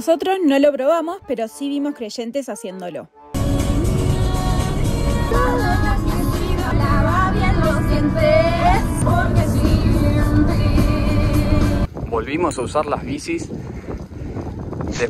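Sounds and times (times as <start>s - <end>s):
background music with gliding melody: 2.7s - 11.9s.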